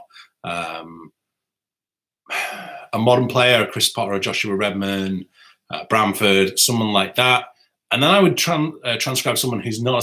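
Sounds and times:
man speaking: 0:00.0 - 0:01.1, 0:02.3 - 0:10.0
man's breathy throat noise: 0:02.3 - 0:02.9.

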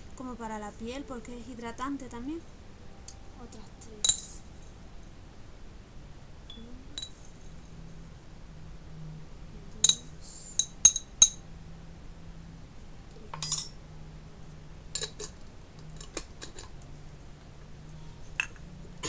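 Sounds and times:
spoon clinking against glass jar: 0:09.8 - 0:11.4, 0:13.4 - 0:13.8.

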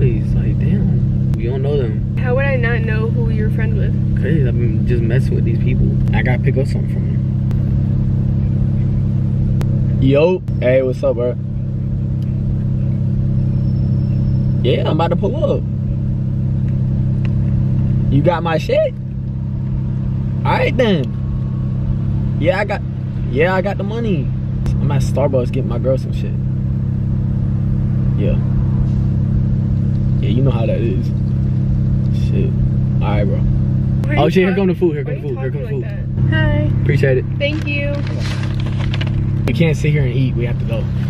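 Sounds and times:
car engine idling: 0:00.0 - 0:41.0.

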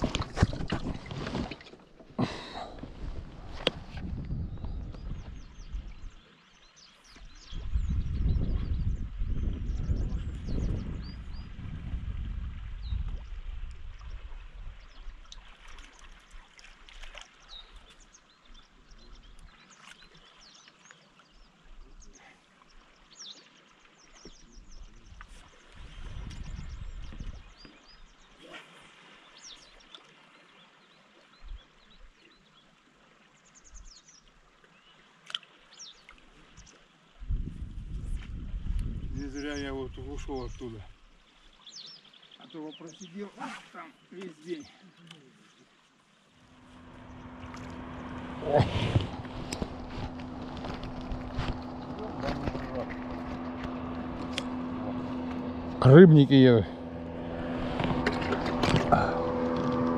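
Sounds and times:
flowing river water: 0:00.0 - 0:59.9
small birds chirping: 0:02.5 - 0:11.5, 0:17.2 - 0:32.7, 0:38.8 - 0:56.9
wind rumble on microphone: 0:02.7 - 0:06.2, 0:07.2 - 0:15.2, 0:24.5 - 0:27.6, 0:37.2 - 0:41.0, 0:46.5 - 0:59.9.

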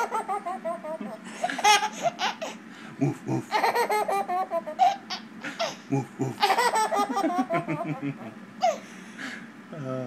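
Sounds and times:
baby laughing: 0:00.0 - 0:08.8.

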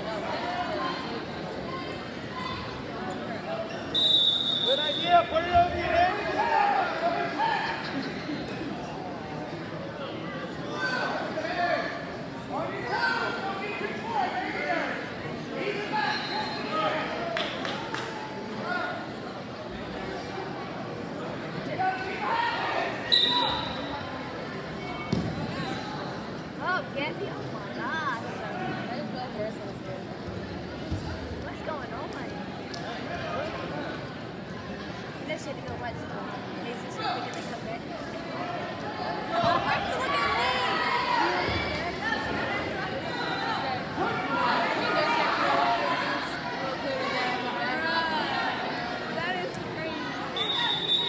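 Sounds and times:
referee's whistle blast: 0:03.9 - 0:05.1, 0:23.1 - 0:23.9, 0:50.4 - 0:51.0
spectators and coaches yelling: 0:04.0 - 0:08.0, 0:38.5 - 0:51.0.

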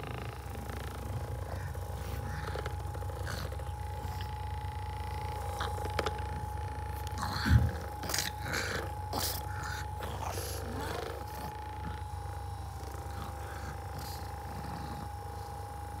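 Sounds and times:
dog grunting and snorting: 0:00.0 - 0:16.0
massage gun motor whine: 0:00.0 - 0:16.0.

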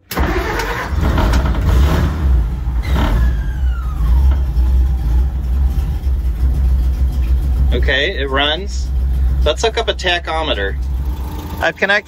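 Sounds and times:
engine starting and running: 0:00.0 - 0:12.0.

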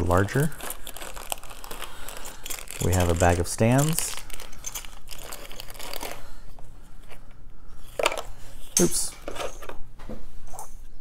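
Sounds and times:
plastic bag crinkling: 0:00.0 - 0:06.5.

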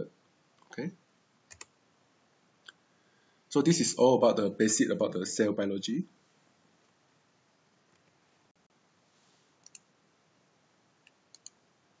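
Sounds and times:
room hiss: 0:00.0 - 0:12.0
computer mouse clicks: 0:01.5 - 0:01.7, 0:09.6 - 0:09.9, 0:11.0 - 0:11.6.

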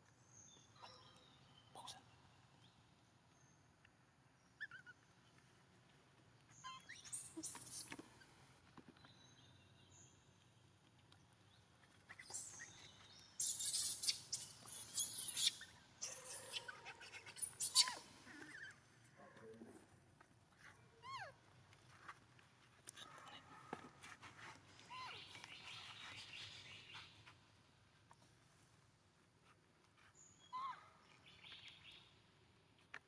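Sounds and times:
high-pitched falling animal calls: 0:13.4 - 0:18.8.

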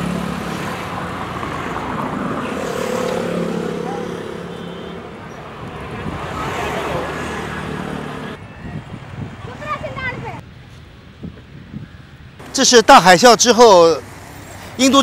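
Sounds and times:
traffic-like background hum: 0:00.0 - 0:15.0.

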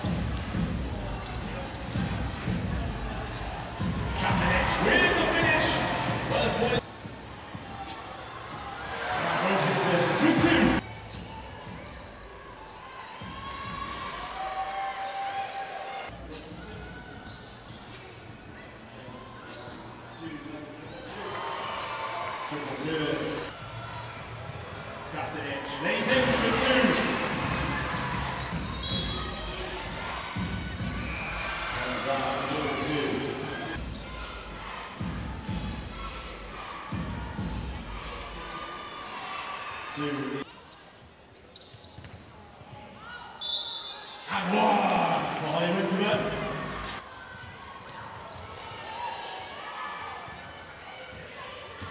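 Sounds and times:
crowd noise: 0:00.0 - 0:51.9.

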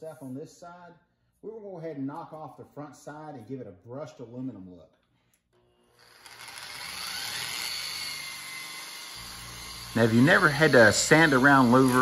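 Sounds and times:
electric surface-conditioning tool whining: 0:05.6 - 0:12.0.

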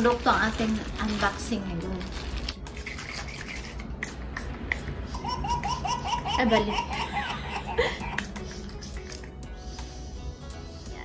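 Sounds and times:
plastic packaging crinkling: 0:00.0 - 0:03.8.

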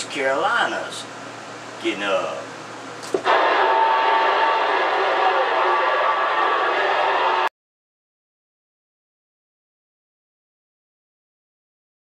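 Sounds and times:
faint garbled radio signals: 0:03.2 - 0:07.5
radio static hiss: 0:03.2 - 0:07.5.

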